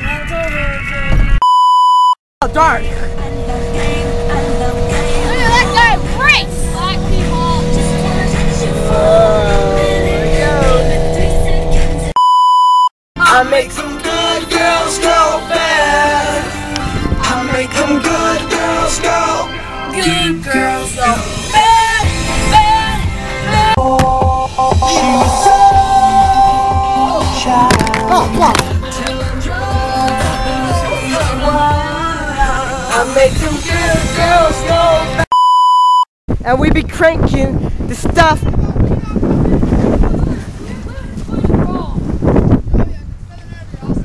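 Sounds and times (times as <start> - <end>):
test-tone beep: 1.4 - 2.2, 6.7 - 12.9, 23.8 - 27.7, 35.3 - 36.0
low rumble: 2.4 - 12.2, 23.5 - 30.9
music with gliding melody: 2.4 - 12.2, 13.6 - 32.3
music with steady beat: 23.4 - 31.9.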